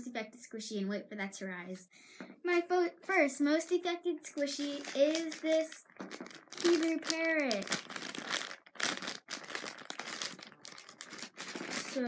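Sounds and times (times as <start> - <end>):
plastic packaging crinkling: 4.2 - 12.0.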